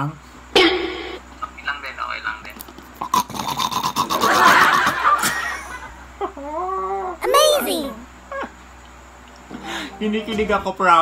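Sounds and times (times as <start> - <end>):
loud pulsing laughter: 4.2 - 7.1.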